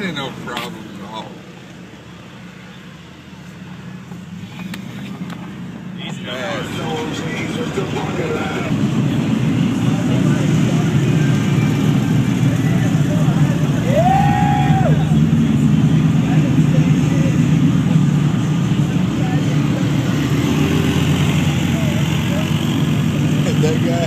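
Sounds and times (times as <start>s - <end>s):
off-road vehicle engines droning: 0.0s - 24.0s
people's voices in background: 0.0s - 24.0s.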